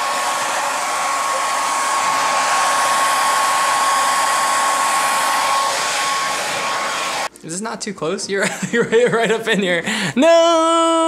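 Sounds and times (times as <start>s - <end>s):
hair dryer blowing air: 0.0s - 7.3s
hair dryer motor whine: 0.0s - 7.3s.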